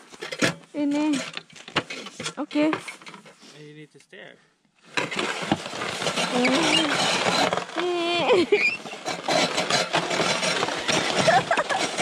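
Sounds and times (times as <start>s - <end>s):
snow racer clicks and clatters: 5.0s - 12.0s.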